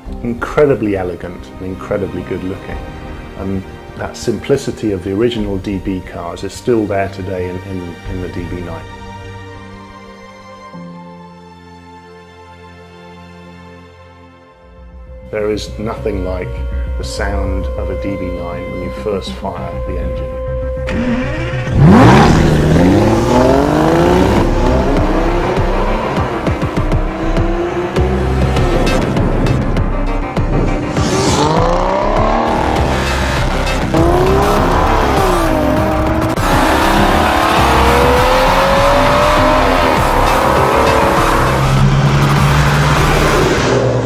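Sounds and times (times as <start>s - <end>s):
car engine revving: 20.7s - 44.0s.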